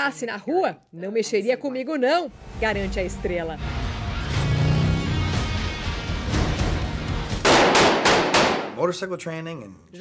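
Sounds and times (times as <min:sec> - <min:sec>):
action film music and effects: 0:02.3 - 0:07.8
loud sharp blasts: 0:07.4 - 0:08.8.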